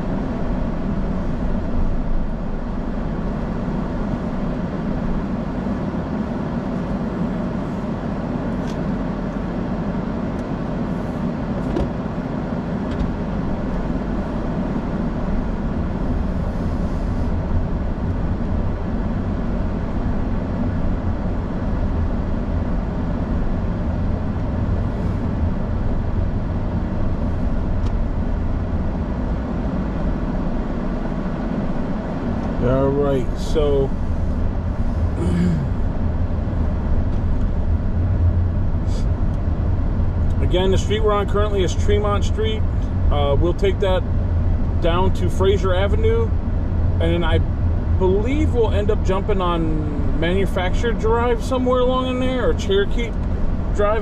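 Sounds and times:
engine and tyre rumble in car: 0:00.0 - 0:54.0.

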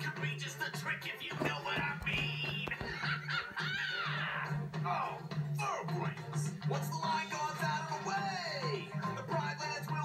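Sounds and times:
cartoon song from television: 0:00.0 - 0:10.0.

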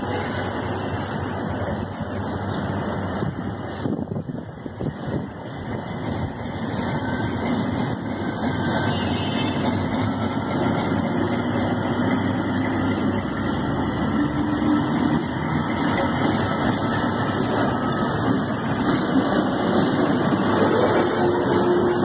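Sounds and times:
diesel locomotive engine hum: 0:00.0 - 0:22.0.

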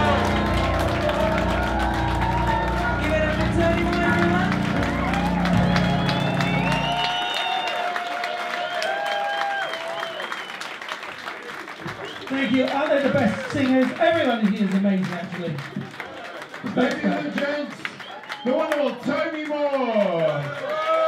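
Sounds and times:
live band music: 0:00.0 - 0:07.2
hands clapping: 0:00.0 - 0:21.0.

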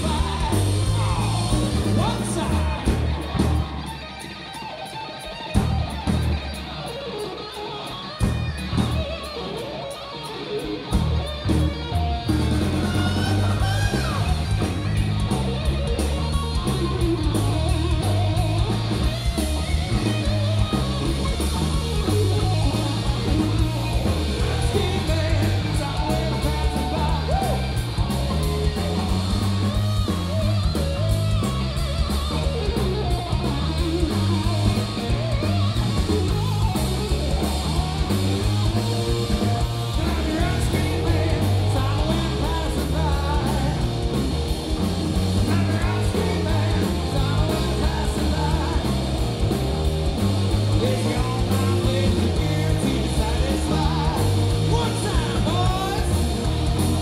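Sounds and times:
live rock band playing: 0:00.0 - 0:57.0.

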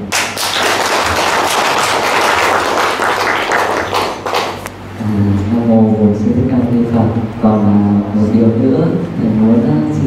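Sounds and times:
people applauding: 0:00.1 - 0:04.7.

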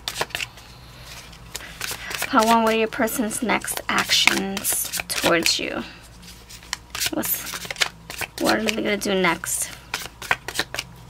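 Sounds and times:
cards being shuffled: 0:00.0 - 0:10.9.

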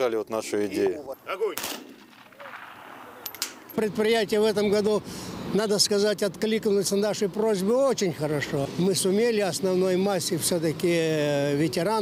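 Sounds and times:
rifle volley with echo: 0:01.6 - 0:03.6.

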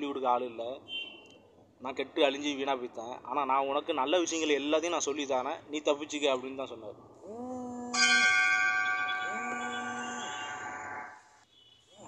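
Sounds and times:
metal bell ringing: 0:08.0 - 0:11.2.

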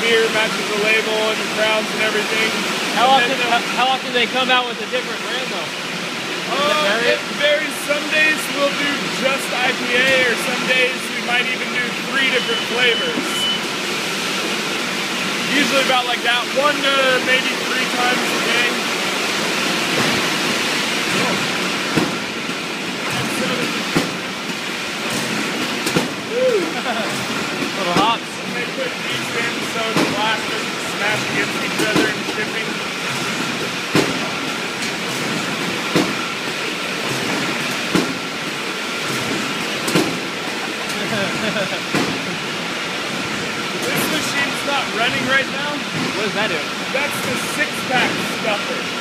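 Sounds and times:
muffled voices: 0:00.0 - 0:05.8, 0:06.4 - 0:13.6, 0:15.5 - 0:18.8, 0:26.2 - 0:32.8, 0:43.7 - 0:49.0
conveyors and packing machines: 0:00.0 - 0:49.0
steady high machine whine: 0:00.0 - 0:49.0.

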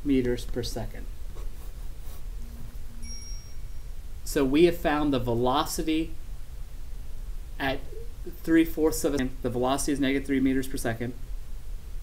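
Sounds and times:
low room hum: 0:00.0 - 0:12.0
low steady tone: 0:02.0 - 0:10.6
thin high tone: 0:02.4 - 0:04.0.

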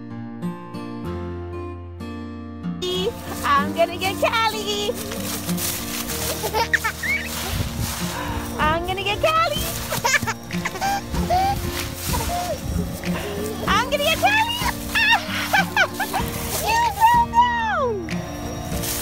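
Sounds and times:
background music with held chords: 0:00.0 - 0:19.0
children squealing and calling: 0:05.1 - 0:08.2, 0:09.5 - 0:17.7.

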